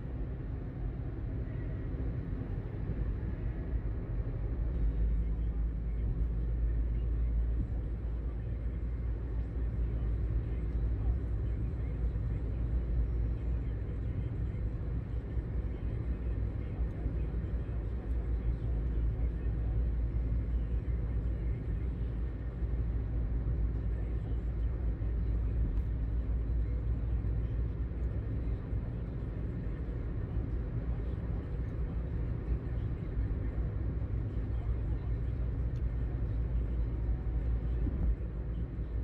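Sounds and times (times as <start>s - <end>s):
car road noise rumble: 0.0s - 39.0s.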